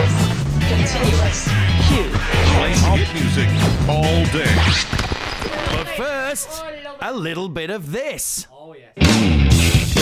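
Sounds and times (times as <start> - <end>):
music with heavy bass: 0.0 - 5.8, 9.0 - 10.0.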